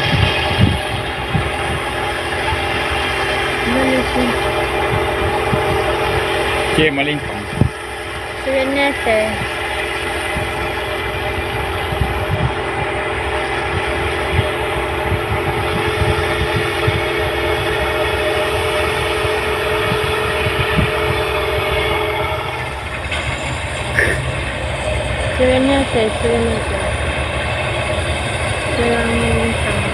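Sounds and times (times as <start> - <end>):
combine harvester drone: 0.0 - 29.9.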